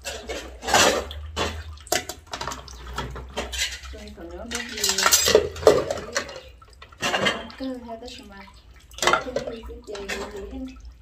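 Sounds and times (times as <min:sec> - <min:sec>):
ceramic dishes clinking and clattering: 0:00.0 - 0:03.9, 0:04.5 - 0:07.6.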